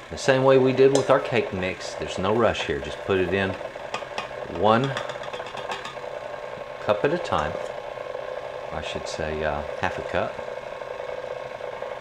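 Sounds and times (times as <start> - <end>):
stand mixer whisking: 0.0 - 12.0.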